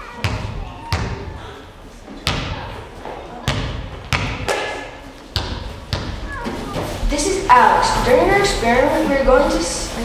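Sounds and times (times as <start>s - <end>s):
basketball bouncing on stage floor: 0.2s - 1.3s, 2.2s - 2.8s, 3.4s - 6.6s.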